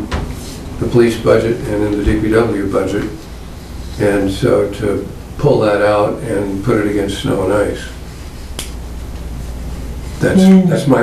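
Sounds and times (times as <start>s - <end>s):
low room hum: 0.0s - 11.0s.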